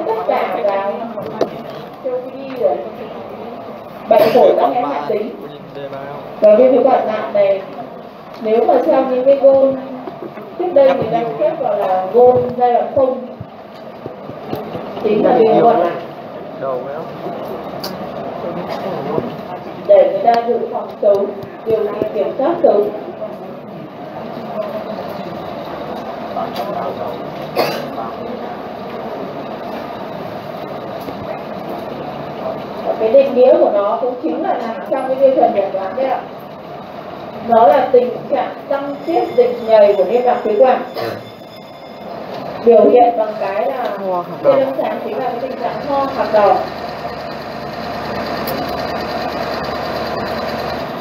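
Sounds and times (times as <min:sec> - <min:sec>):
indistinct low voices: 0:00.0 - 0:41.4
room noise hum: 0:00.0 - 0:51.0
steady mechanical running noise: 0:00.0 - 0:51.0.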